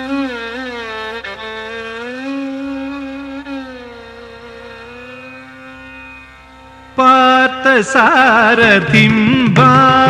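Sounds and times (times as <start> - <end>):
held violin note: 0.0 - 7.8.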